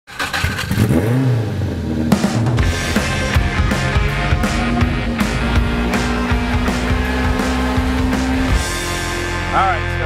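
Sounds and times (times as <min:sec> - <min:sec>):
car engine revving: 0:00.1 - 0:10.0.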